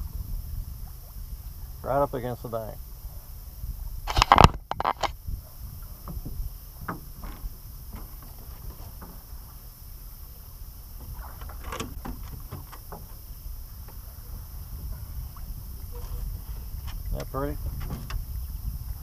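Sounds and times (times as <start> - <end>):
steady low rumble: 0.0 - 19.0
water splashing: 5.8 - 18.6.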